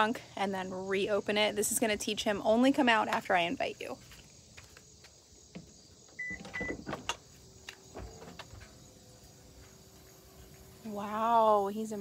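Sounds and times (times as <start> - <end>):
short beeps: 6.2 - 6.8.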